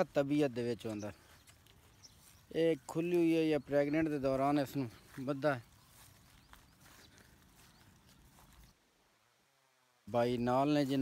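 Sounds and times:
footsteps on grass: 0.0 - 8.9.

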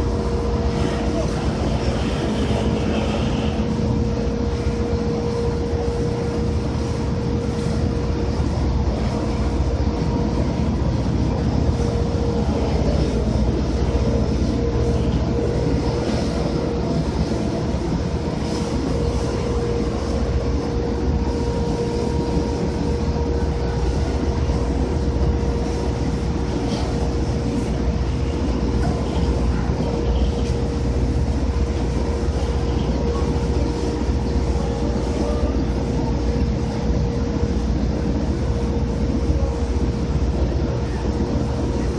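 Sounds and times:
crane machinery rumbling and whining: 0.0 - 41.9.

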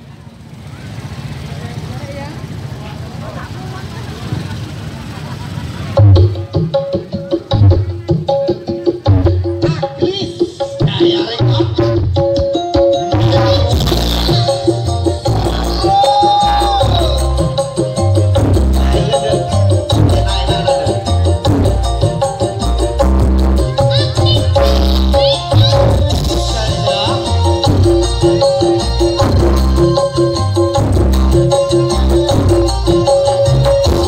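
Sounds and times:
loud music with heavy pulsing bass: 5.9 - 34.0.

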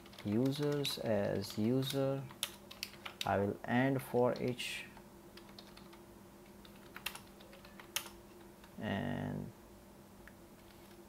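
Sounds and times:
typing on computer keyboard: 0.0 - 1.0, 1.8 - 3.3, 5.4 - 6.0, 6.6 - 8.2.

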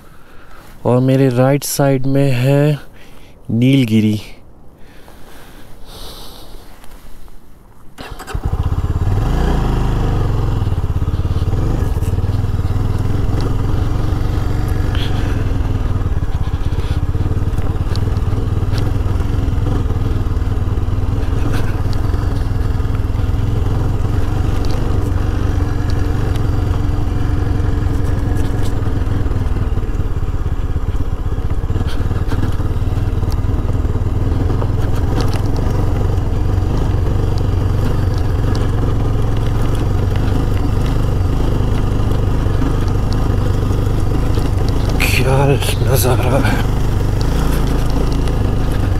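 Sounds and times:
motorcycle engine running: 8.0 - 48.9.

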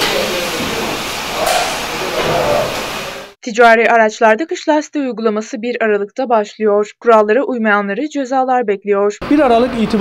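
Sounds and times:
tyre machine hissing: 0.0 - 3.4.

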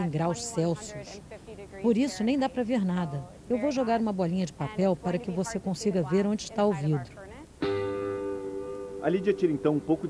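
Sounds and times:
guitar chord ringing: 7.6 - 10.0.

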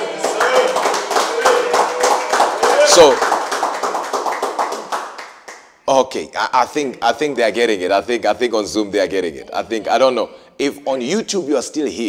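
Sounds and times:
people clapping: 0.0 - 5.8
man talking: 2.6 - 3.2, 5.8 - 12.0.

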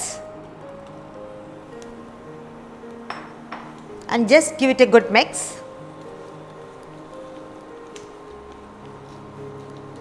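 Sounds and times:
quiet background music: 0.0 - 10.0
glass bowl clinking: 3.1 - 3.8.

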